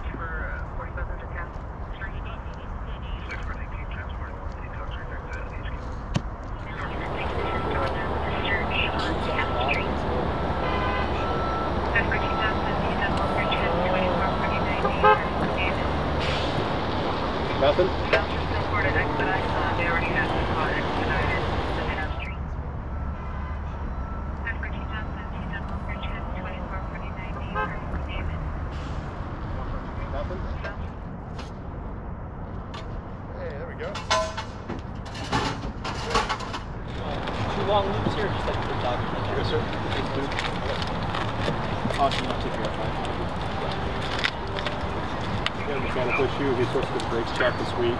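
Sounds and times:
voices in background: 0.0s - 22.4s, 24.4s - 28.5s, 35.9s - 47.9s
electronic beeps: 6.6s - 16.8s
fire engine idling: 6.6s - 22.3s, 36.9s - 47.9s.

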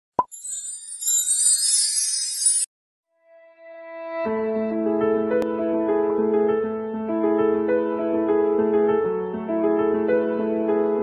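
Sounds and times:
high tinkling shimmer: 0.2s - 2.7s.

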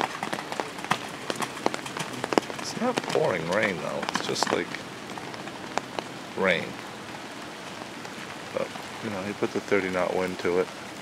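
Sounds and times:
rain pattering on umbrella: 0.0s - 11.0s.

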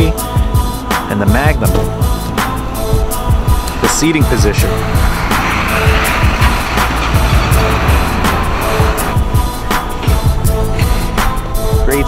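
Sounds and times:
background music with steady beat: 0.0s - 12.0s
car passing: 2.3s - 11.8s.

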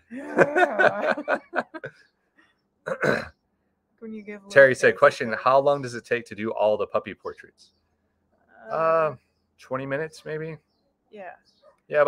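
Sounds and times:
people laughing: 0.0s - 1.9s
cough-like burst: 2.9s - 3.3s.

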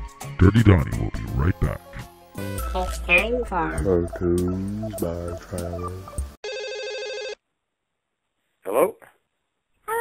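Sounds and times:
telephone ringing: 6.4s - 7.4s.

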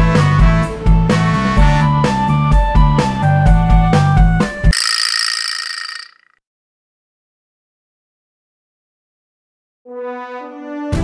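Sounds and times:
high shimmering ring: 4.7s - 6.3s.

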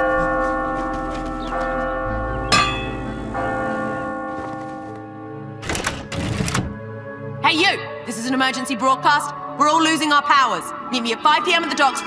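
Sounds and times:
clock tower bell tolling: 1.4s - 4.8s.

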